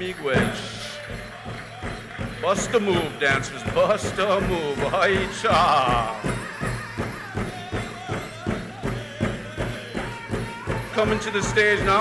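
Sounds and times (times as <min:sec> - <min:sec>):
drum beaten in dance rhythm: 0:00.0 - 0:12.0
faint singing: 0:00.6 - 0:12.0.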